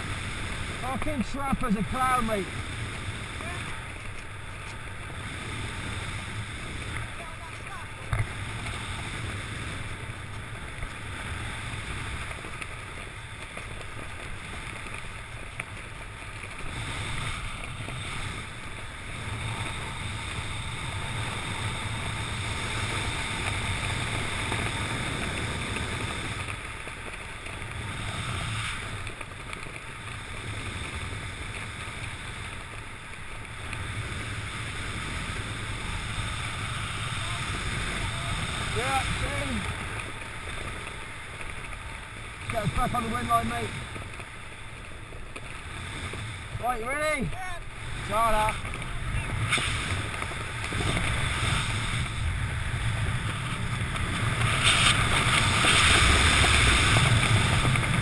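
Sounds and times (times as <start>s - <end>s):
wind rushing over microphone: 0.0s - 29.2s, 29.8s - 58.0s.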